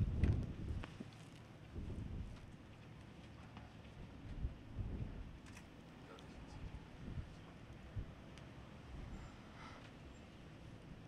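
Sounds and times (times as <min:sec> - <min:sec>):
wind buffeting microphone: 0:00.0 - 0:02.5, 0:04.0 - 0:05.4, 0:06.5 - 0:08.2.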